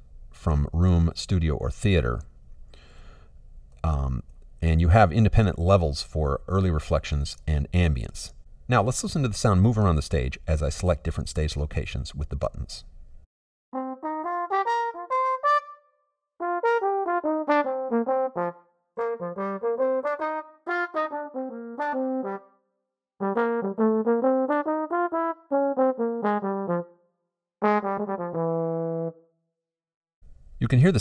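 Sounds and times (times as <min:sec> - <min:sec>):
trombone playing quick phrases: 0:13.8 - 0:15.8, 0:16.4 - 0:22.5, 0:23.2 - 0:26.9, 0:27.6 - 0:29.2.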